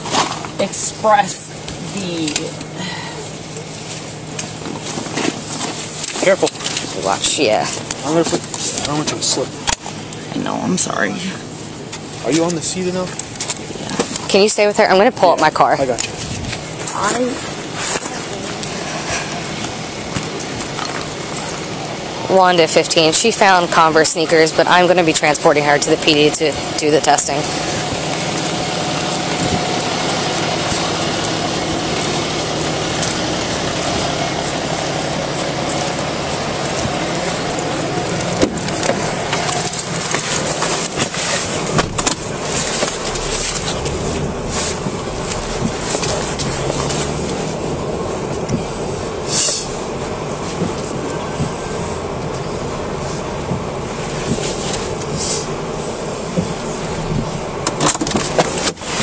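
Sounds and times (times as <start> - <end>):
car cabin hiss and hum: 0.0 - 59.0.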